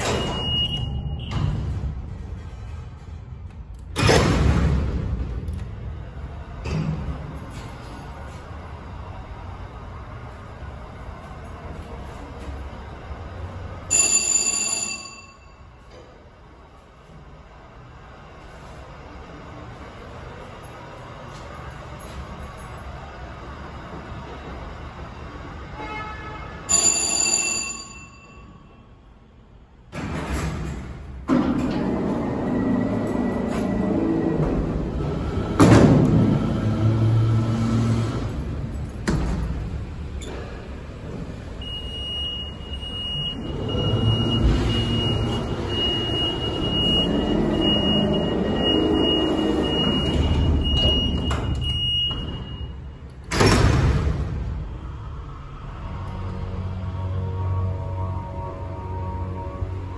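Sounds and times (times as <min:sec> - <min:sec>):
elevator chime: 0:00.0 - 0:01.4, 0:13.8 - 0:16.0, 0:26.6 - 0:29.0, 0:41.6 - 0:53.1
freight doors rumbling and clattering: 0:00.0 - 0:14.6, 0:16.0 - 0:25.8, 0:29.8 - 0:59.9
elevator running: 0:00.0 - 0:59.9.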